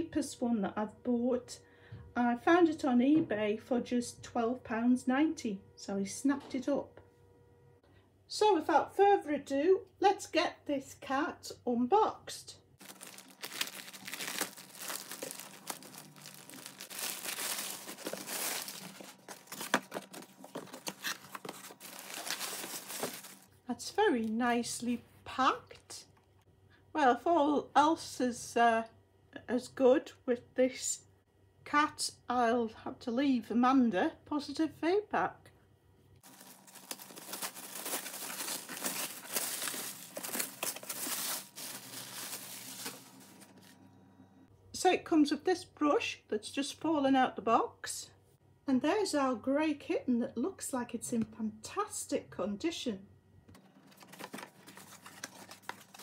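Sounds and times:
plastic mailing bag crinkling: 12.8s - 23.6s, 36.2s - 43.7s, 53.8s - 56.0s.

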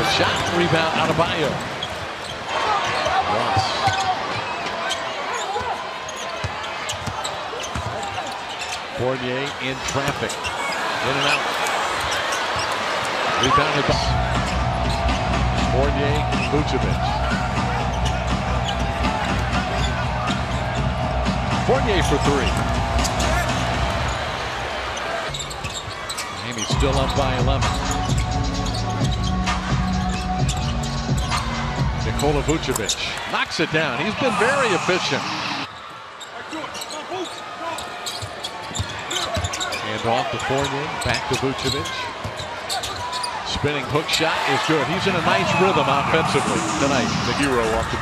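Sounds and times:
arena crowd noise: 0.0s - 48.0s.

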